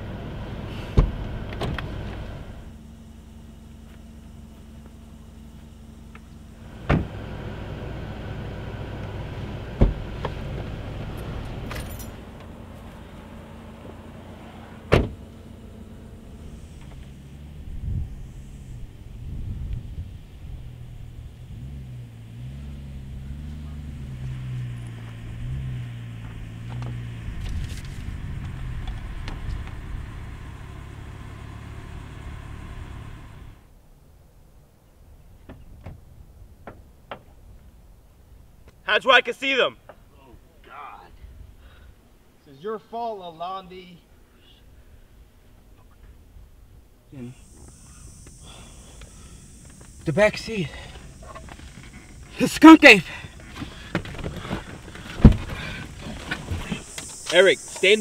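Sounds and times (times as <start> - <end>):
car engine humming: 0.0 - 33.8, 39.8 - 58.0
car doors shutting: 0.6 - 2.6, 6.1 - 7.8, 9.0 - 17.8, 47.4 - 58.0.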